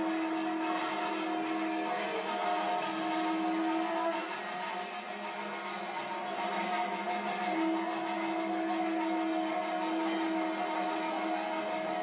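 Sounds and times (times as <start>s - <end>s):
long held tone: 0.0s - 12.0s
steady ringing tones: 0.0s - 12.0s.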